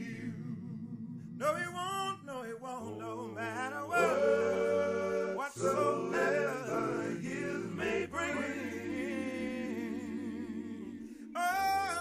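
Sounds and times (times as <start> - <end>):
gospel voices holding a long note: 0.0 - 12.0.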